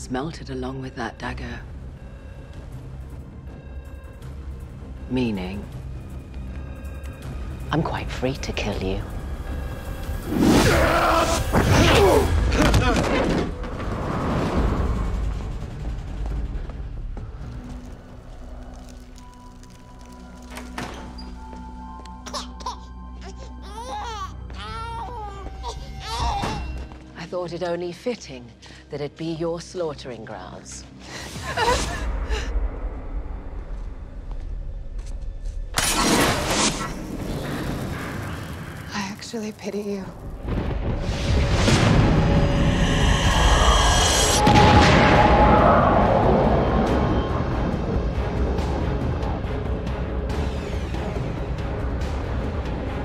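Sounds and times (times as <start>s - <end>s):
deep low rumble: 37.0s - 49.9s
low drone: 40.1s - 53.0s
loud rushing whoosh: 40.9s - 49.1s.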